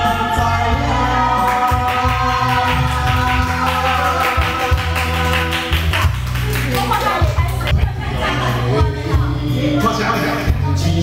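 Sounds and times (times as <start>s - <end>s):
electronic karaoke backing music: 0.0s - 11.0s.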